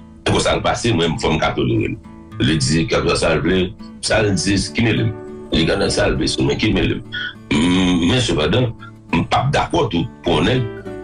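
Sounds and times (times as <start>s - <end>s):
background music: 0.0s - 11.0s
voice holding long vowel: 7.1s - 8.2s.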